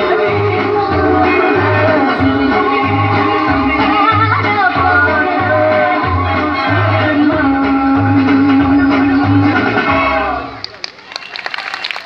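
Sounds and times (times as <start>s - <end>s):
audience clapping: 10.6s - 12.0s.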